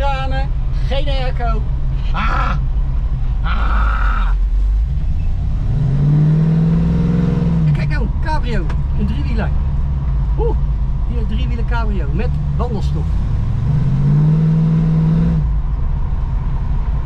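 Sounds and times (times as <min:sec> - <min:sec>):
voices talking: 0:00.0 - 0:02.7, 0:03.4 - 0:04.4, 0:07.6 - 0:13.2
car engine revving: 0:00.0 - 0:17.0.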